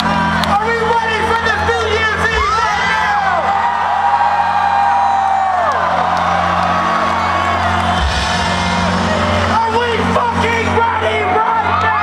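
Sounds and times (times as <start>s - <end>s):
crowd whooping: 0.0s - 12.0s
electronic dance music: 0.0s - 12.0s.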